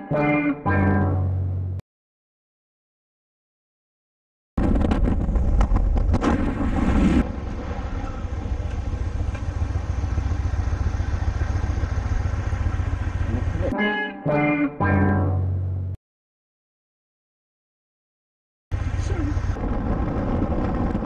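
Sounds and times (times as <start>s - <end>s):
wind rush: 4.6s - 9.0s
motorcycle engine: 4.6s - 13.7s, 18.7s - 21.0s.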